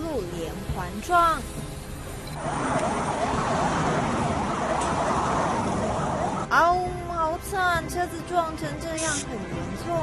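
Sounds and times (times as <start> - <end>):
steady rushing noise: 0.6 - 6.5
emergency vehicle siren: 2.3 - 6.6.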